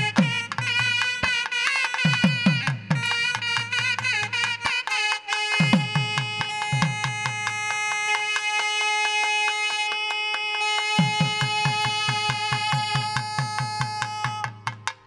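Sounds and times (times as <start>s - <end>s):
double-reed horns holding a note: 0.0s - 14.5s
drum sharp strokes: 0.0s - 15.0s.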